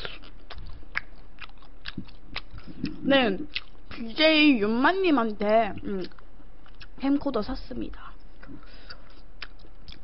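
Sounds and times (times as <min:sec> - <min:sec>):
wet mouth clicks: 0:00.0 - 0:03.8, 0:08.4 - 0:10.0
person chewing: 0:00.0 - 0:04.0, 0:05.7 - 0:07.0, 0:08.2 - 0:10.0.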